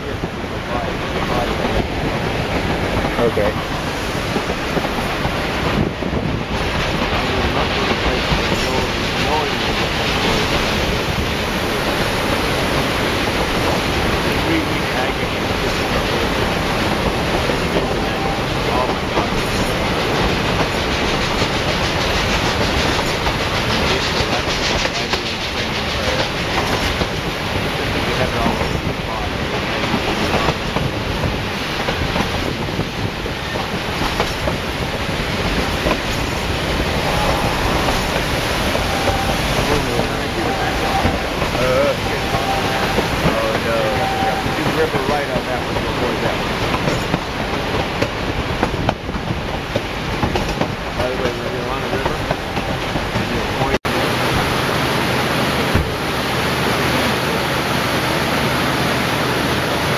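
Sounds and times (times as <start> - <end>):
train rumble with wheel clatter: 0.0 - 59.9.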